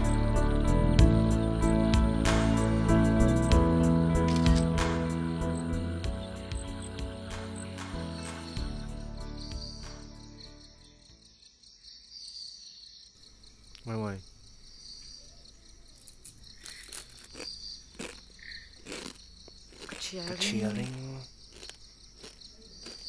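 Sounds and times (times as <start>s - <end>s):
soft background music: 0.0s - 11.2s
crickets chirping: 0.0s - 23.0s.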